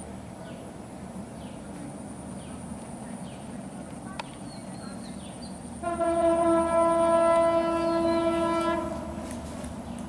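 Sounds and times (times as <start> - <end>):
train horn blast: 5.8 - 9.4.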